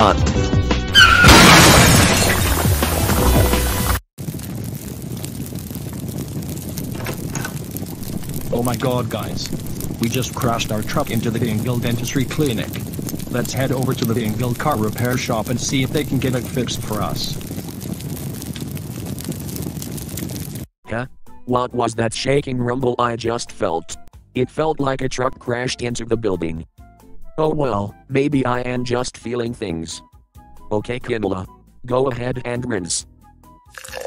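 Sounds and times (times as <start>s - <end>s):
background music: 0.0s - 1.2s
large fire crackling: 1.3s - 20.7s.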